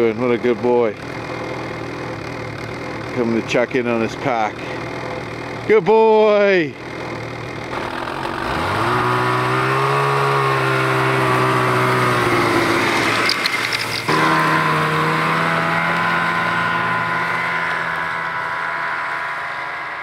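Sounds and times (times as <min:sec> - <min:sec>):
snowmobile engine revving: 0:00.0 - 0:20.0.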